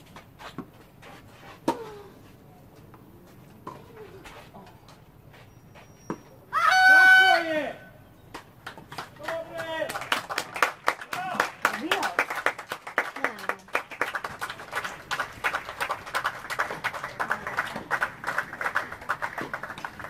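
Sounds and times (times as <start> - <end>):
crowd clapping: 8.6 - 20.0.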